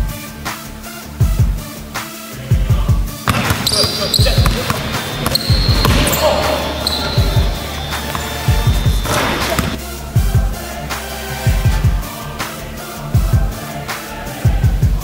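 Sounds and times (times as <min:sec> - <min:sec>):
ball dribbled on hardwood floor: 0:03.3 - 0:09.8
shoe squeaks: 0:03.3 - 0:09.8
voices: 0:03.3 - 0:09.8
music with bass beat: 0:05.4 - 0:12.2.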